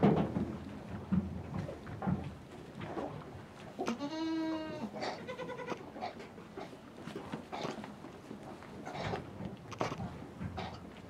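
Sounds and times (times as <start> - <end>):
goats bleating: 3.8 - 5.8.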